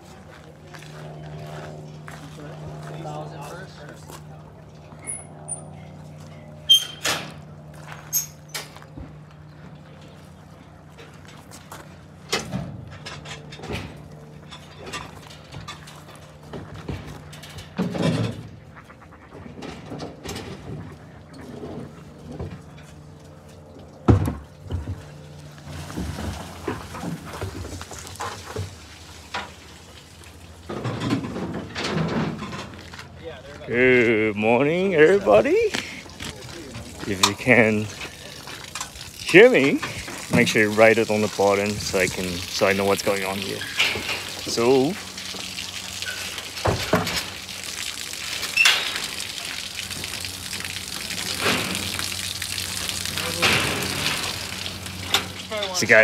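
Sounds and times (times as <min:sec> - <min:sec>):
truck low hum: 0:00.0 - 0:56.0
equipment clunks and knocks: 0:24.0 - 0:25.0.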